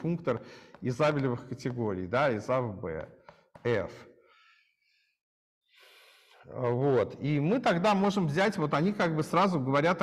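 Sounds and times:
soft intake of breath: 5.7s - 6.5s.

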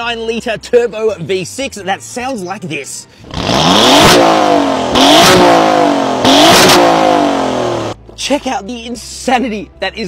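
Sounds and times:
car engine revving: 3.2s - 8.0s.

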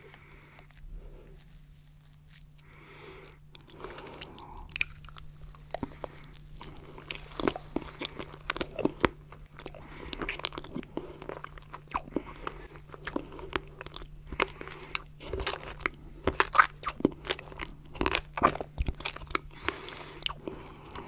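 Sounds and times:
small crunches while chewing: 0.0s - 21.0s
wet chewing and lip smacks: 3.5s - 20.8s.

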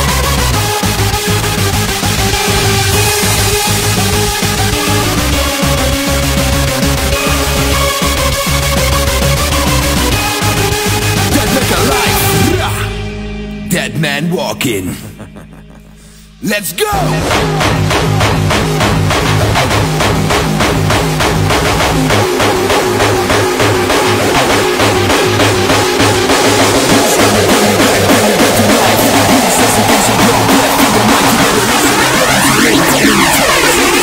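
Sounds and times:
bass line: 0.0s - 34.0s
hardcore electronic dance music: 0.0s - 34.0s
sweeping effect: 1.6s - 6.5s, 21.6s - 34.0s
pounding kick drum: 17.1s - 31.3s.

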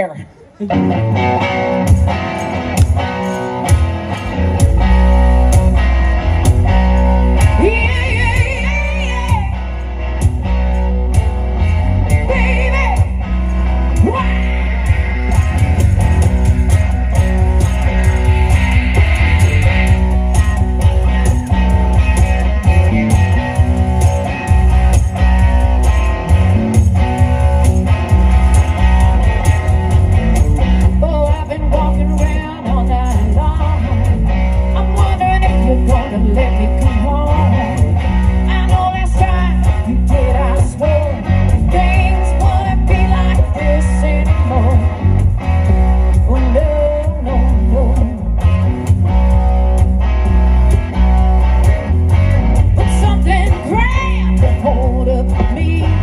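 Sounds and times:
blues-rock band playing: 0.0s - 56.0s
woman singing: 7.4s - 9.6s, 12.2s - 13.2s, 31.0s - 34.1s, 34.7s - 37.8s, 38.5s - 45.0s, 46.2s - 48.3s, 52.8s - 56.0s.

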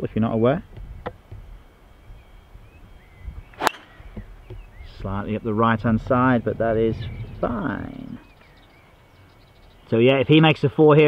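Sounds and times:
golf club striking ball: 3.6s - 4.6s.

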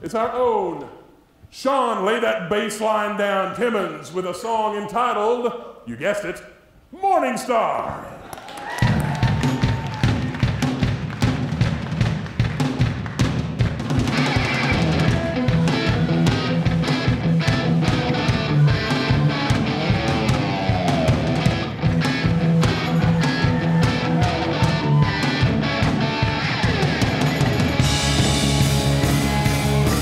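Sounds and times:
drum kit: 8.8s - 30.0s
electric guitar: 13.9s - 30.0s
electric bass line: 14.1s - 30.0s.

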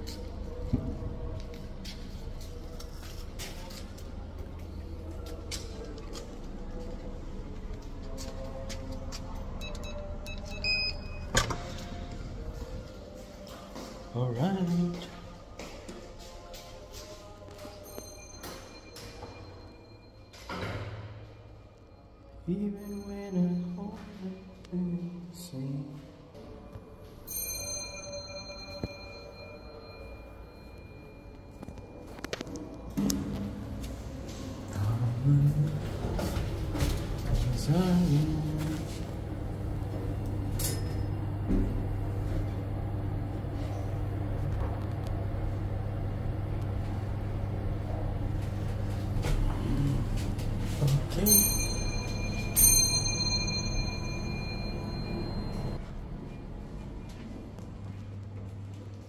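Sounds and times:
steady low hum: 0.0s - 20.4s, 24.2s - 59.0s
elevator arrival chime: 9.5s - 13.2s, 17.3s - 25.7s, 26.5s - 33.0s, 35.2s - 57.5s.

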